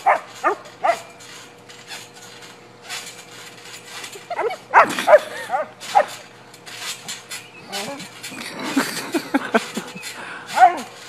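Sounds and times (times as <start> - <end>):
dog yipping and barking: 0.0 - 1.1, 10.6 - 10.9
trampoline mat thuds: 0.0 - 8.1.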